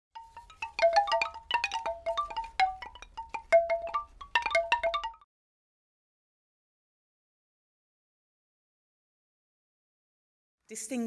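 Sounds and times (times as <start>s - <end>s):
chimes ringing: 0.2s - 5.2s.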